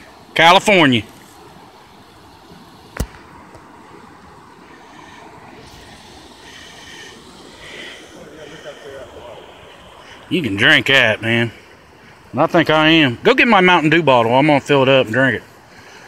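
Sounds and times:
creek running over rocks: 0.0 - 16.0.

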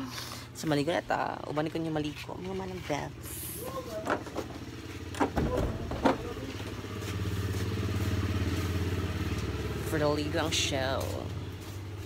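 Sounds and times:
small engine running: 5.7 - 12.0.

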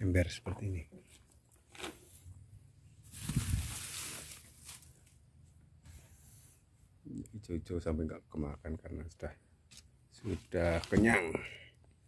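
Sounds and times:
rustling hiss: 3.1 - 5.1.

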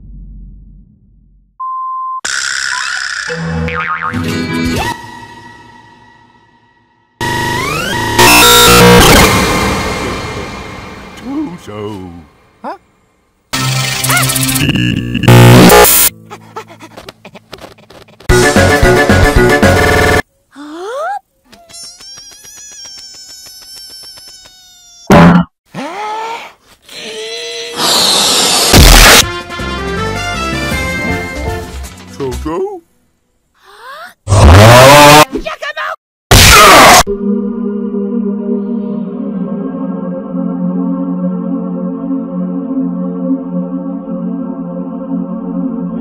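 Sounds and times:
pulsing high buzzing tone: 7.2 - 10.2, 14.4 - 16.1
cartoon music with sound effects: 13.6 - 16.5, 18.3 - 20.2, 36.3 - 37.2.

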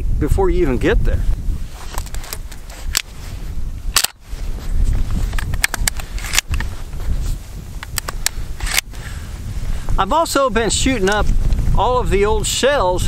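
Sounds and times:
wind rumble on microphone: 0.0 - 13.0.

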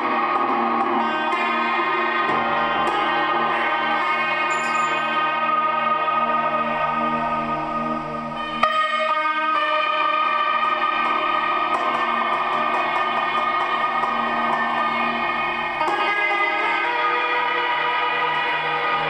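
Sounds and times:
echoing lap steel guitar drone: 0.0 - 19.0.

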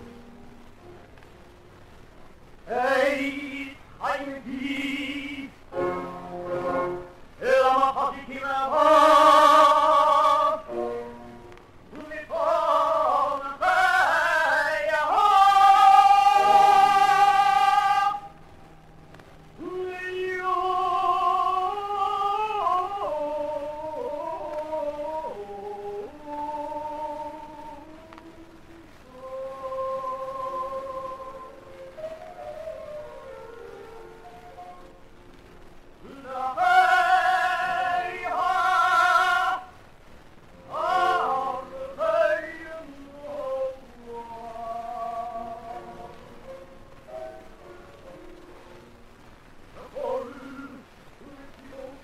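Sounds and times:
man singing liturgical chant: 2.7 - 5.6, 7.4 - 10.7, 11.9 - 18.3, 19.6 - 28.2, 36.0 - 39.8, 40.7 - 46.2, 49.8 - 52.0.

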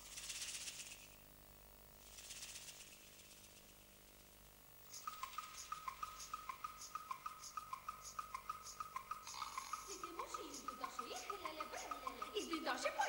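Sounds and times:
faint hissing swishes: 2.0 - 7.0.

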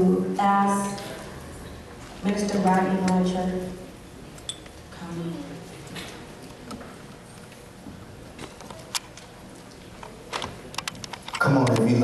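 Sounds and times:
man speaking over a microphone: 11.4 - 12.0.

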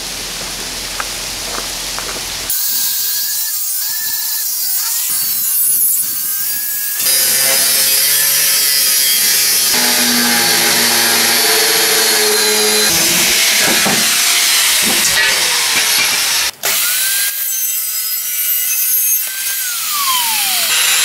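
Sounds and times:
angle grinder cutting steel: 2.5 - 21.0.

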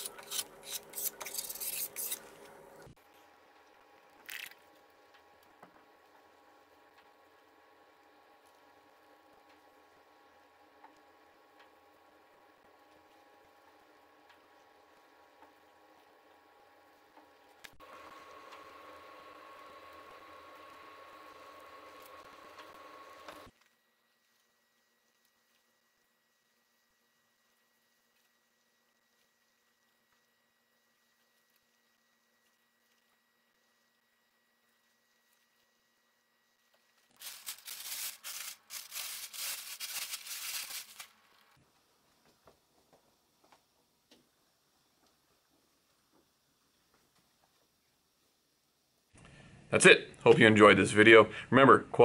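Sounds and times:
room noise: 0.0 - 52.0
rustling rubbing noise: 37.2 - 41.1.

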